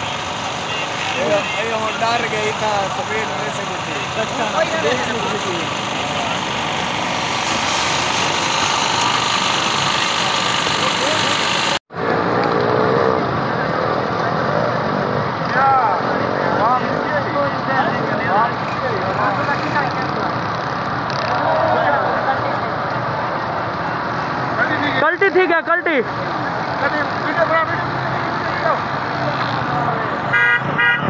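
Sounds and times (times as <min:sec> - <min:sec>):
off-road jeep engines: 0:00.0 - 0:31.0
spectators talking and calling out: 0:08.0 - 0:30.4.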